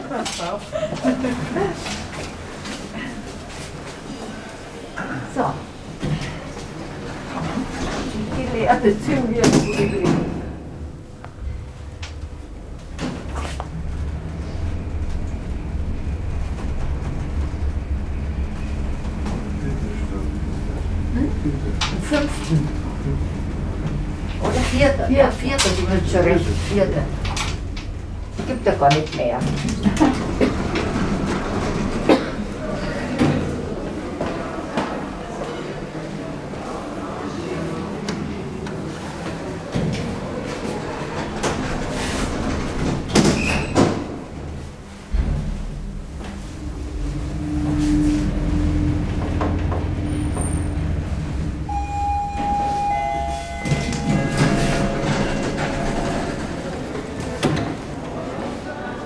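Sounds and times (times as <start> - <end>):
sliding elevator doors rumbling: 0.0 - 59.0
elevator door click: 51.7 - 57.9.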